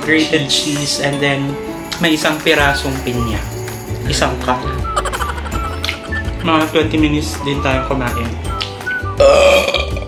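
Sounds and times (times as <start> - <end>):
background music: 0.0 - 10.0
man burping loudly: 9.2 - 10.0.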